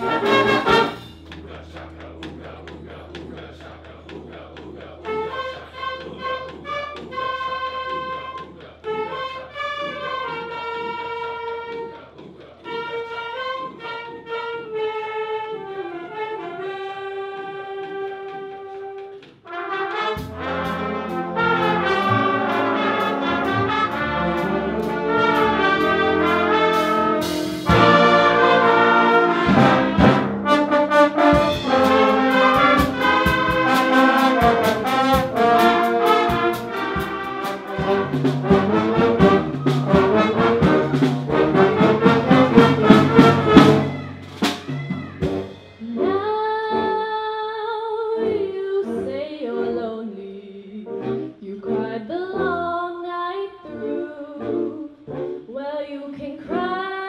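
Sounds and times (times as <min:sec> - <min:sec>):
trumpets and trombones: 0:00.0 - 0:01.3, 0:05.0 - 0:47.1, 0:50.9 - 0:52.6, 0:53.7 - 0:55.6
school band playing: 0:00.0 - 0:47.0, 0:50.9 - 0:52.0, 0:53.7 - 0:55.5
drum hits: 0:19.4 - 0:45.8.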